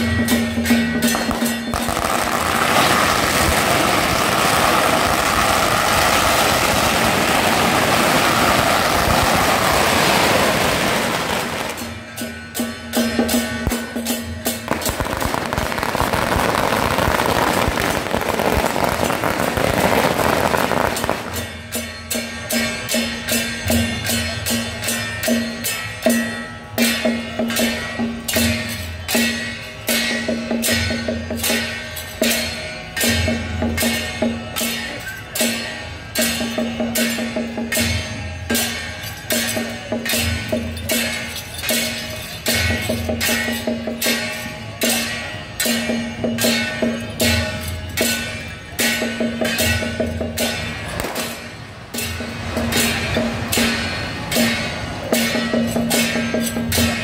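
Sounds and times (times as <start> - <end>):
firecrackers crackling: 0.0 - 22.6, 46.5 - 57.0
drum strokes: 0.0 - 34.5
cymbal strokes: 0.0 - 57.0.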